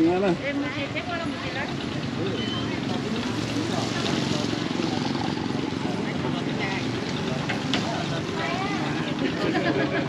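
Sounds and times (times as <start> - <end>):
people talking: 0.0 - 10.0
small motorbike engines idling: 0.0 - 10.0.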